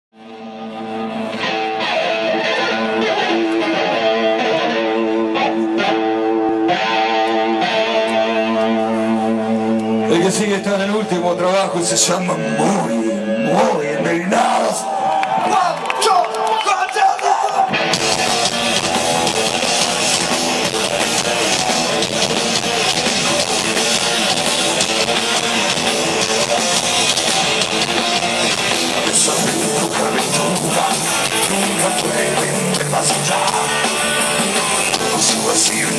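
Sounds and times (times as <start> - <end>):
electric guitar slow chords: 0.2 - 15.1, 17.7 - 35.9
live rock band: 0.2 - 16.6, 17.4 - 35.9.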